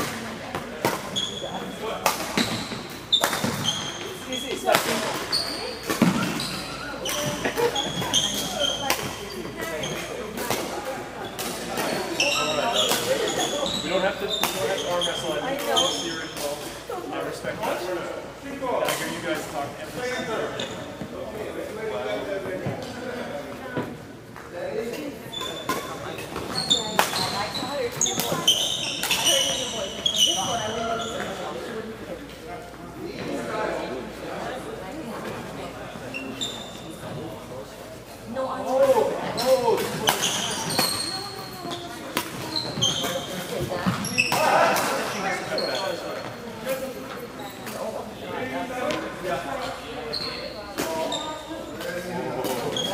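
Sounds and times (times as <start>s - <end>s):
voices of players: 0.0s - 52.9s
sneakers squeaking on wooden floor: 0.1s - 16.8s, 20.0s - 21.4s, 25.0s - 31.8s, 35.9s - 37.5s, 38.7s - 48.1s, 48.7s - 52.9s.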